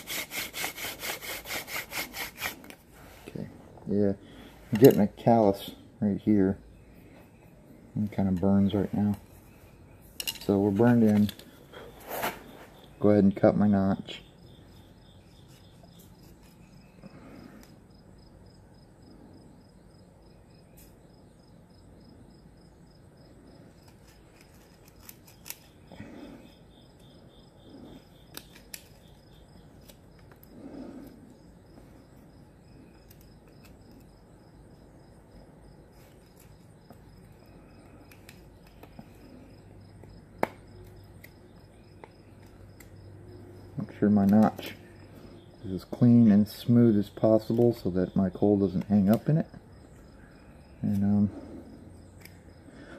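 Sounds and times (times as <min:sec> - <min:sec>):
knife scraping wood: 0:00.0 - 0:03.1, 0:15.2 - 0:17.0, 0:23.8 - 0:26.3, 0:27.9 - 0:31.2.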